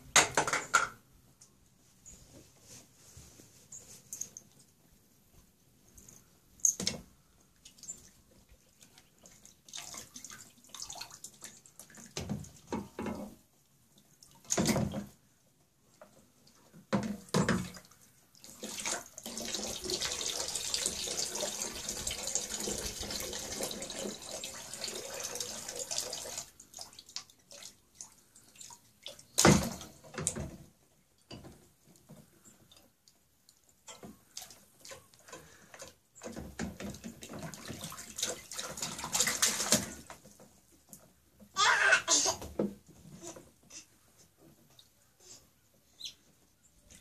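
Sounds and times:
water splashing: 0:07.6 - 0:12.6, 0:36.8 - 0:40.4
water pouring: 0:17.8 - 0:30.0, 0:36.4 - 0:40.3.

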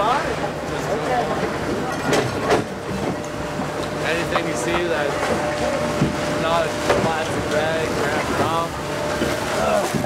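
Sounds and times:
conveyor humming and rattling: 0:00.0 - 0:10.0.

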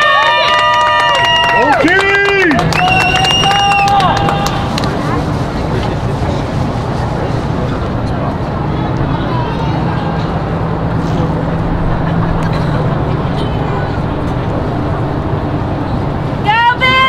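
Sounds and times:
low stadium rumble: 0:00.0 - 0:17.0.

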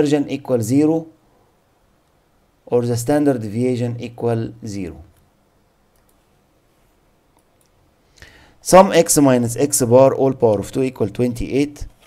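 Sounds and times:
faint clicks: 0:05.9 - 0:06.2.

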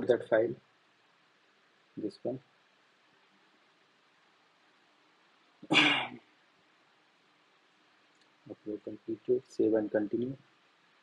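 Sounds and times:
short cough: 0:05.7 - 0:06.2.

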